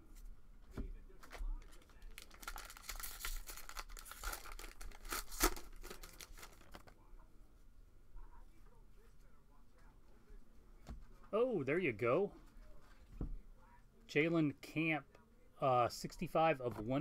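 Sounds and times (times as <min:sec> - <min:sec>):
wrapper tearing and crinkling: 0:01.7 - 0:06.9.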